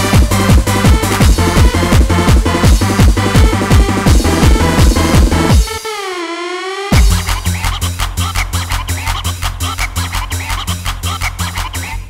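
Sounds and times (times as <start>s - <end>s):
fast kick drum and bass: 0.0s - 5.8s, 6.9s - 11.8s.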